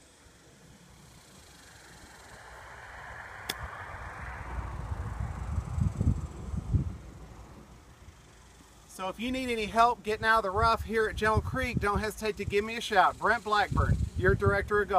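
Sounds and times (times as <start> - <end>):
golf club hitting ball: 3.4 - 3.8
wind buffeting microphone: 3.5 - 8.2, 9.2 - 12.9, 13.6 - 14.9.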